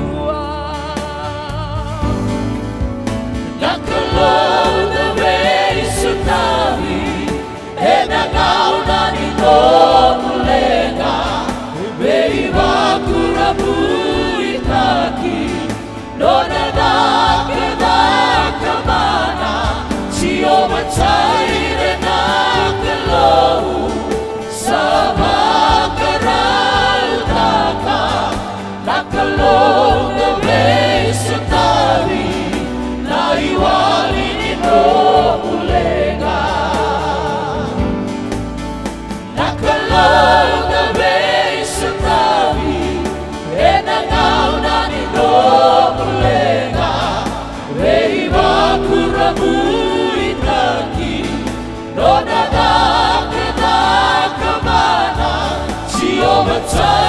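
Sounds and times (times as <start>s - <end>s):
women singing gospel in harmony: 0.0s - 2.4s, 3.5s - 38.3s, 39.2s - 57.0s
instrumental backing: 0.0s - 57.0s.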